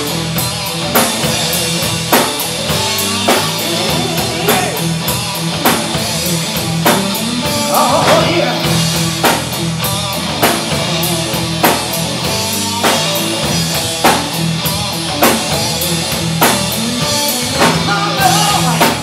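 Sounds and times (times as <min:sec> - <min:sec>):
bass guitar: 0:00.0 - 0:19.0
drum kit: 0:00.0 - 0:19.0
electric guitar: 0:00.0 - 0:19.0.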